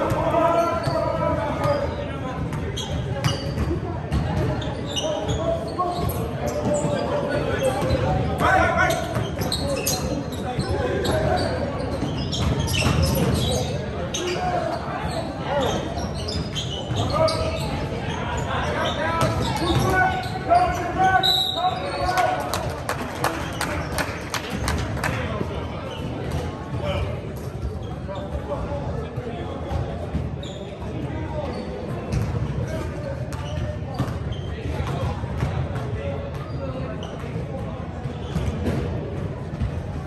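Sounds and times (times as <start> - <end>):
players and spectators calling out: 0.0 - 31.9.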